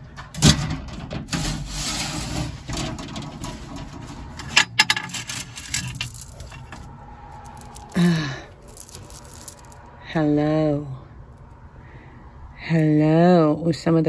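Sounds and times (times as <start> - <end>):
jewelry rubbing and rustling: 1.3 - 9.9
bead necklace clinking: 4.8 - 9.9.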